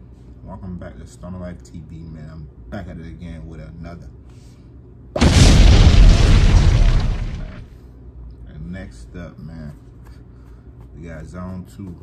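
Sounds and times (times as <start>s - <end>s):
explosion boom: 5.2s - 7.7s.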